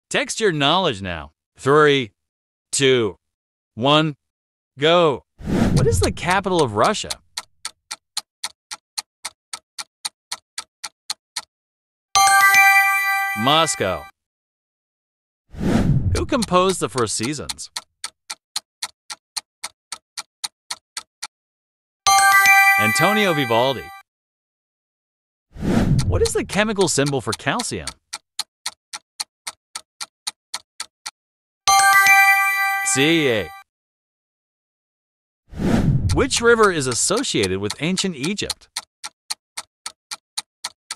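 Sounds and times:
timer ticking: 5.6 - 11.5, 12.2 - 14.1, 16.1 - 21.3, 22.1 - 24.0, 25.9 - 33.6, 36.0 - 40.9
bright chime: 12.2 - 14.1, 22.1 - 24.0, 31.7 - 33.6.

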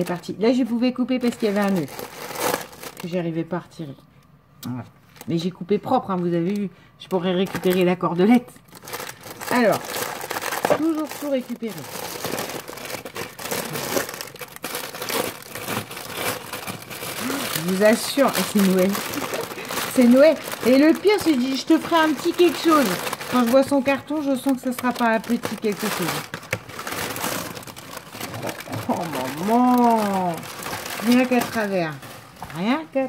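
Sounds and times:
wrapping paper crinkling: 0.0 - 3.4, 7.2 - 33.0.

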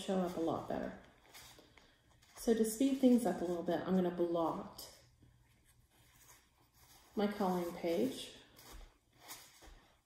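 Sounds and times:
paper towel rustling: 5.4 - 10.0.

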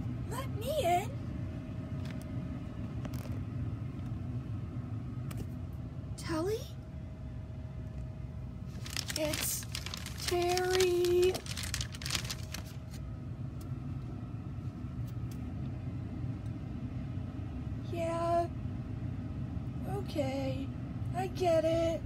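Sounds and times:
steady low hum: 0.0 - 22.0
plastic bag rustling: 8.6 - 13.0.

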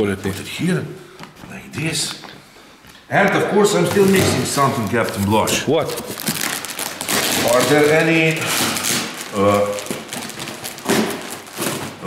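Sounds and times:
plastic wrapping rustling: 3.2 - 12.0.

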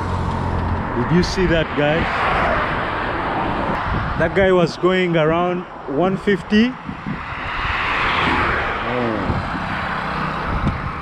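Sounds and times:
car passing by: 0.0 - 5.2, 6.9 - 11.0.

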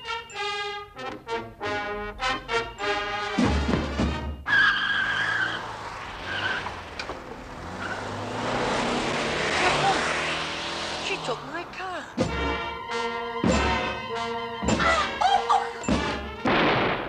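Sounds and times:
brass marching band playing: 0.0 - 4.4, 12.2 - 15.2, 15.8 - 16.5
car engine and road noise: 0.0 - 17.0
car tyres squealing: 4.3 - 15.9.

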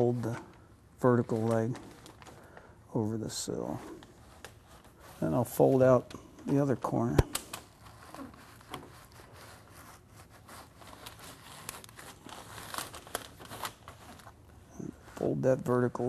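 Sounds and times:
flashing tape crinkling: 0.0 - 16.0.

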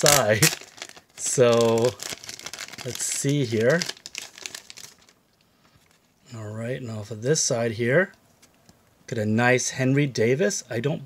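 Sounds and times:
plastic bag crackling: 0.0 - 5.2.

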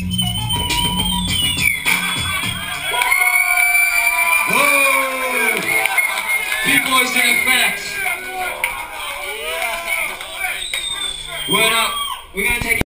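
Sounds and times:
bass-heavy hip hop beat: 0.0 - 12.8.

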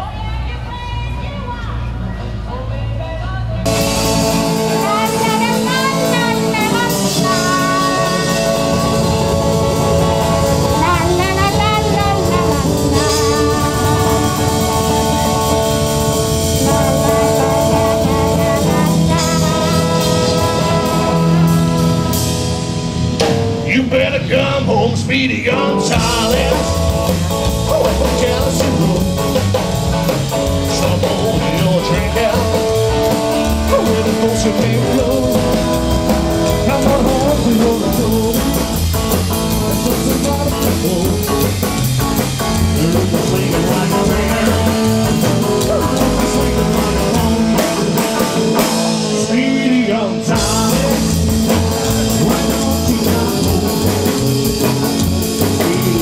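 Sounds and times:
live rock and roll band: 0.0 - 56.0
person singing: 2.2 - 22.2, 23.6 - 41.7, 42.5 - 56.0.

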